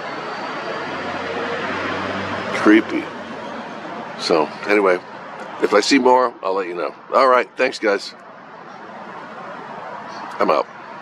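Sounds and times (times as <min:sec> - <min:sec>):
passing vehicle rumble: 0:00.0 - 0:11.0.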